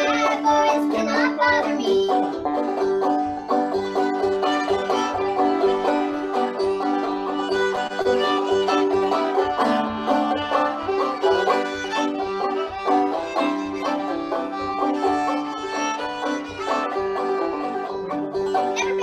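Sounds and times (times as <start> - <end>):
banjo picking: 0.0 - 19.0
fiddle bowing long notes: 0.0 - 19.0.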